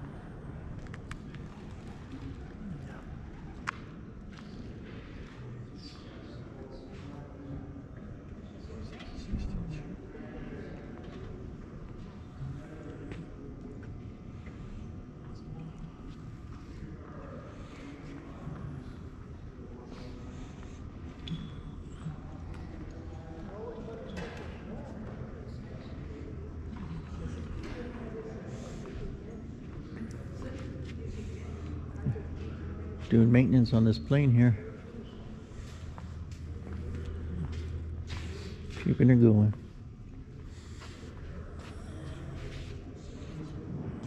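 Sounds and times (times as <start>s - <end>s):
distant indistinct voices: 0.0s - 44.0s
steady low hum: 0.0s - 44.0s
footsteps on concrete floor: 35.6s - 38.9s.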